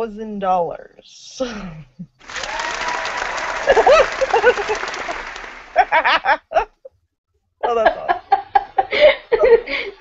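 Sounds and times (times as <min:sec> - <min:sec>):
crowd whoops: 0:02.2 - 0:06.0
crowd applause and cheering: 0:02.2 - 0:06.2.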